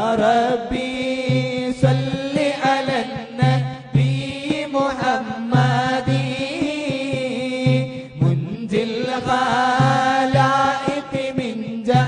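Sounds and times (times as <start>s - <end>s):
group chanting devotional verses: 0.0s - 12.0s.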